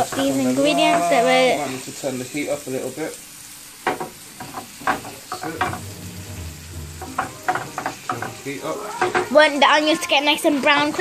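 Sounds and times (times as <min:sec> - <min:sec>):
onions sizzling in a frying pan: 0:00.0 - 0:11.0
sharp knocks: 0:03.9 - 0:08.4
wooden spatula scraping pan: 0:03.9 - 0:09.4
low hum: 0:05.5 - 0:07.9.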